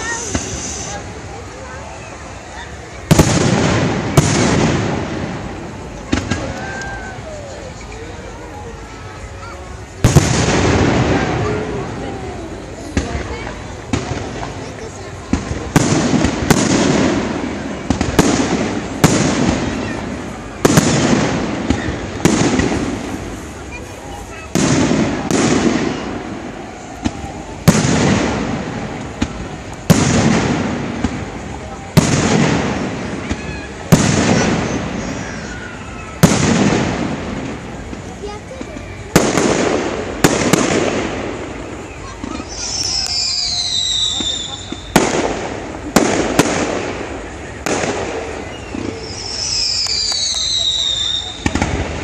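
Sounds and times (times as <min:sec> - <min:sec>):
firework shells bursting: 0:39.0 - 0:52.0.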